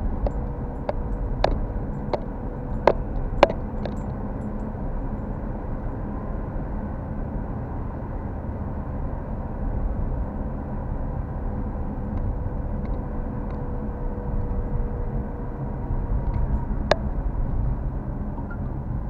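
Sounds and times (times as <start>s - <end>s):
car road and engine rumble: 0.0s - 19.0s
faint steady hum: 0.0s - 19.0s.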